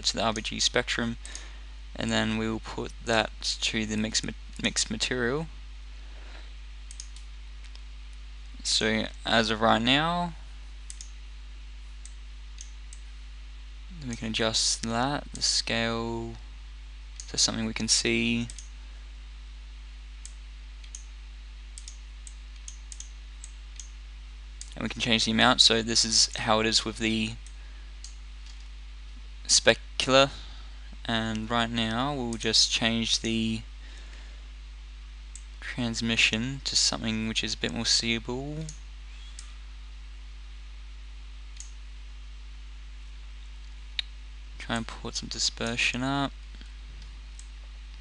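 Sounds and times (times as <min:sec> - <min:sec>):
low electrical hum: 0:00.0 - 0:48.0
computer mouse clicks: 0:06.9 - 0:07.8, 0:10.9 - 0:11.2, 0:21.8 - 0:23.9.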